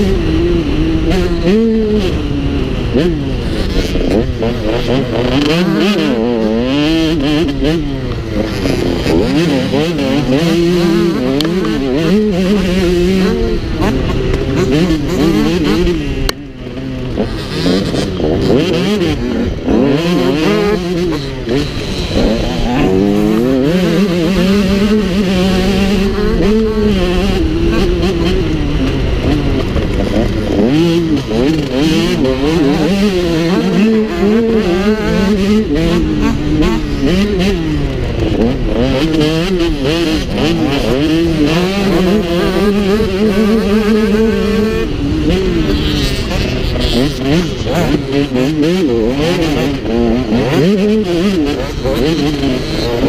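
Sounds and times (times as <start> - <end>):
motocross bike engine revving: 0.0 - 53.0.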